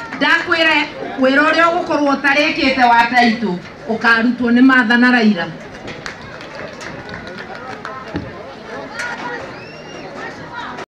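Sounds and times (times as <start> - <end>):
crowd murmur: 0.0 - 10.9.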